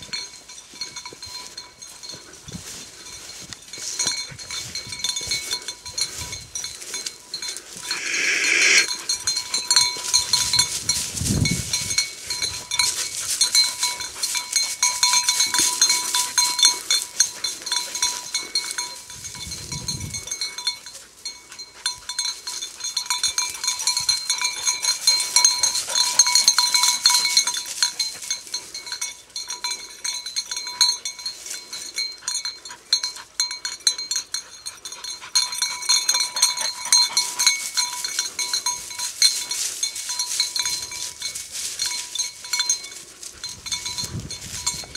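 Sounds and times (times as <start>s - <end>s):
dog collar bell jingling: 0.0s - 44.9s.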